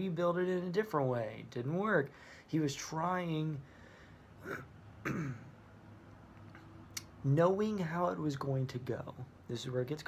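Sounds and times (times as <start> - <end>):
man clearing his throat: 4.4 - 5.6.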